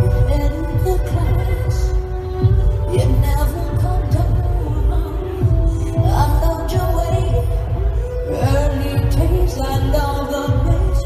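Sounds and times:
live rock band music: 0:00.0 - 0:11.0.

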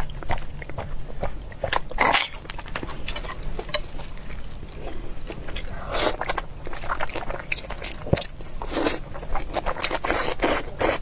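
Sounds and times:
wet chewing and mouth clicks: 0:00.0 - 0:11.0.

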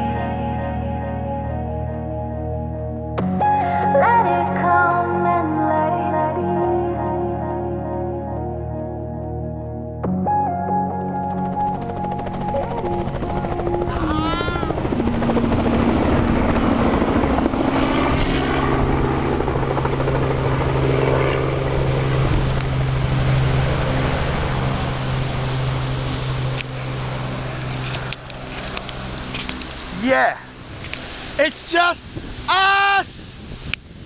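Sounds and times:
helicopter rotor and turbine: 0:10.8 - 0:34.0.

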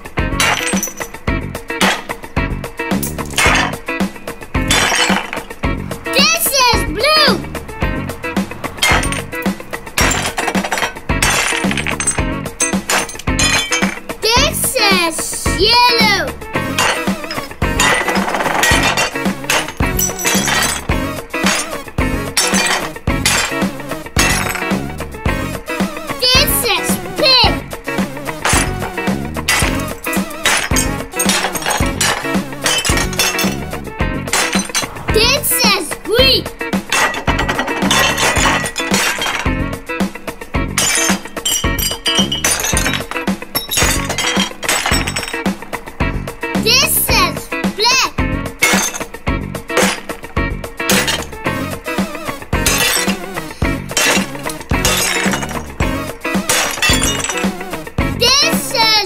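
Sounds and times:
upbeat children's music: 0:00.0 - 0:59.0
broken shards clinking: 0:00.3 - 0:02.3, 0:02.9 - 0:05.6, 0:08.7 - 0:14.5, 0:16.6 - 0:24.8, 0:28.3 - 0:35.7, 0:36.8 - 0:45.7, 0:48.6 - 0:58.4
hammer smashing ceramic plate: 0:00.4 - 0:01.2, 0:01.8 - 0:02.2, 0:03.0 - 0:03.9, 0:04.6 - 0:05.6, 0:08.8 - 0:14.4, 0:16.6 - 0:24.8, 0:28.4 - 0:33.7, 0:34.3 - 0:35.3, 0:36.9 - 0:39.6, 0:40.7 - 0:45.4, 0:48.6 - 0:50.3, 0:50.9 - 0:51.4, 0:52.6 - 0:57.8.

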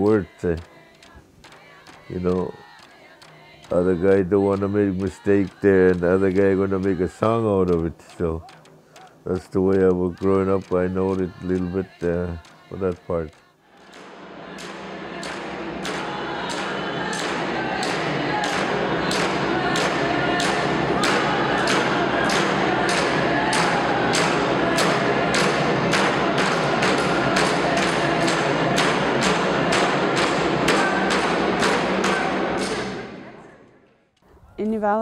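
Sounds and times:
voices singing: 0:00.0 - 0:33.6
frame drums beating: 0:13.8 - 0:33.3.

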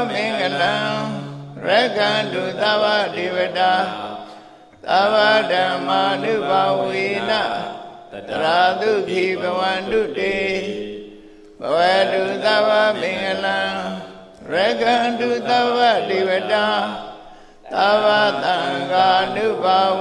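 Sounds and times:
monk chanting: 0:00.0 - 0:20.0.

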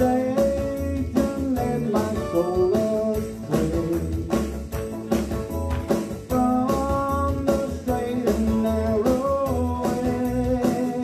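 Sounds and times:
guitar accompaniment: 0:00.0 - 0:11.0
steady beat: 0:00.0 - 0:11.0
sung melody: 0:00.0 - 0:11.0.

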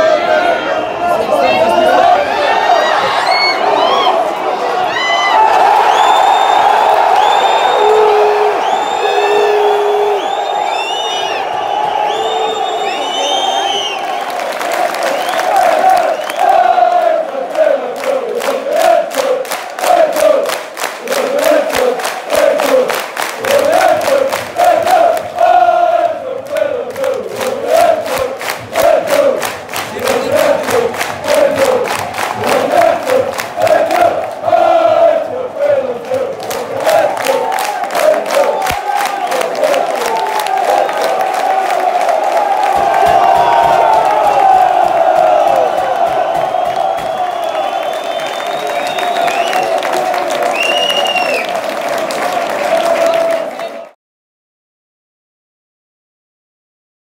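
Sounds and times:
crowd chanting: 0:00.0 - 0:54.0
rhythmic hand clapping: 0:13.9 - 0:54.0.

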